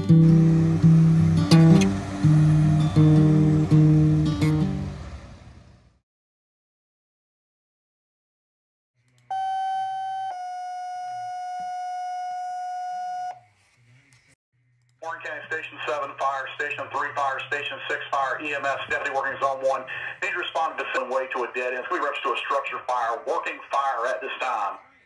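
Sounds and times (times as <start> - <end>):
guitar song: 0.0 - 5.7
two-tone dispatch page: 9.3 - 13.4.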